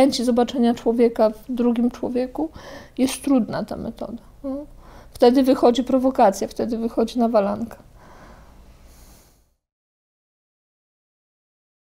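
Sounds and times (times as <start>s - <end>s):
room noise: 0.0s - 9.6s
woman breathing through nose: 2.5s - 3.0s, 4.8s - 5.1s, 8.0s - 9.6s.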